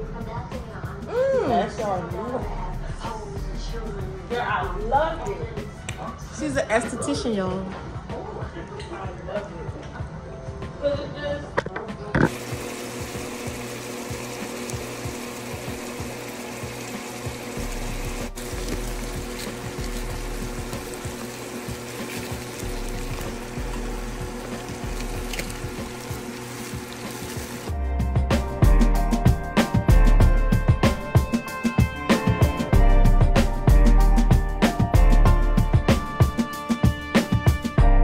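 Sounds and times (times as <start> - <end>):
music with drum beat: 0.0 - 8.6, 13.0 - 38.0
background music: 0.0 - 38.0
food sizzling in a skillet: 12.3 - 27.7.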